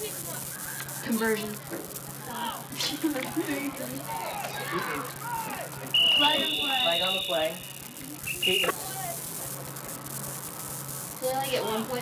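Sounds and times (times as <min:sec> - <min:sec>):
people shouting: 0:02.2 - 0:07.7
referee's whistle blasts: 0:05.2 - 0:08.8.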